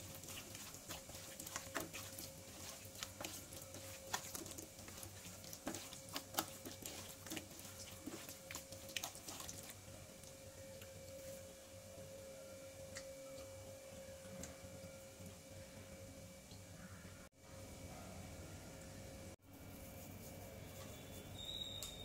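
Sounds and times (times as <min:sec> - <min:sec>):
hand squishing meat in marinade: 0:00.0 - 0:11.3
faint steady hum: 0:00.0 - 0:22.0.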